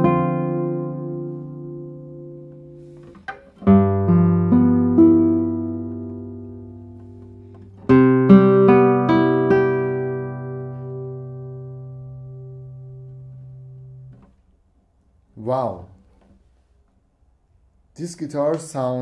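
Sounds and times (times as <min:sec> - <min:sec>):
fingerpicked classical guitar: 0:00.0 - 0:14.4.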